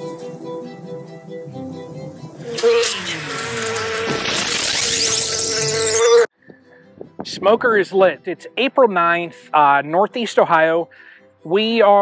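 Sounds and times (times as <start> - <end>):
bees buzzing: 2.4 - 6.3.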